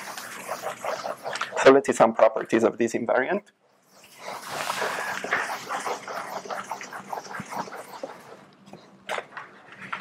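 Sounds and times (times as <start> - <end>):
eraser scrubbing a blackboard: 0.0 - 2.1, 3.9 - 8.5.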